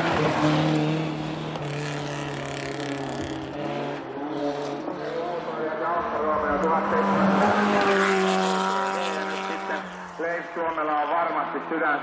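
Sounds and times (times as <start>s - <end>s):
gravel and tyre noise: 0.0s - 12.0s
rally car engine passing: 0.0s - 12.0s.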